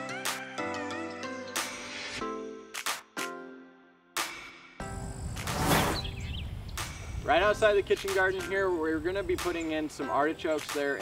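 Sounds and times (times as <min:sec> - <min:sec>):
wind rumbling on microphone: 0:04.9 - 0:09.4
bird chirping: 0:05.7 - 0:10.0.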